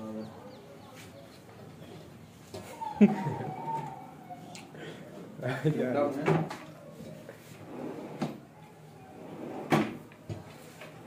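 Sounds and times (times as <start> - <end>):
drawers sliding on runners: 7.6 - 8.4, 9.2 - 10.1.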